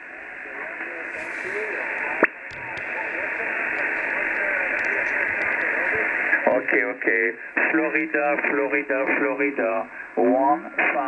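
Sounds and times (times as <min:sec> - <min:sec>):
radio static hiss: 0:00.0 - 0:11.0
faint warbling radio signals: 0:00.7 - 0:06.8.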